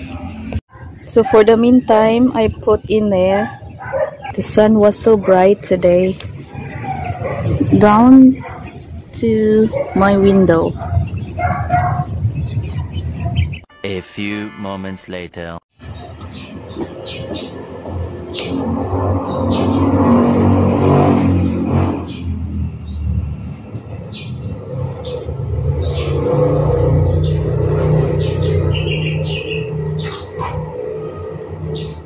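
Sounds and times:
passing traffic rumble: 0.0s - 13.6s, 15.8s - 32.0s
bird chirps: 5.8s - 13.8s, 22.1s - 32.0s.

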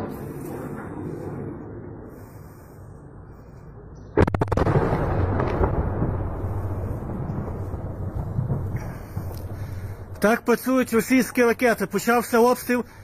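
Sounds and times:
explosion blast: 0.0s - 2.4s, 4.1s - 10.2s
sharp cracks: 4.2s - 12.1s.

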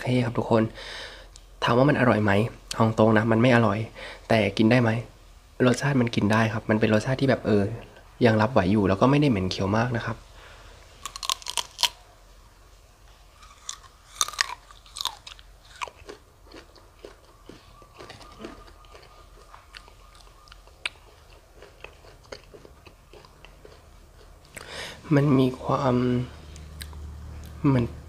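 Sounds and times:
crisp crunches of biting: 11.0s - 12.0s, 13.4s - 24.7s
soft chewing clicks: 13.4s - 24.7s, 26.5s - 27.6s.

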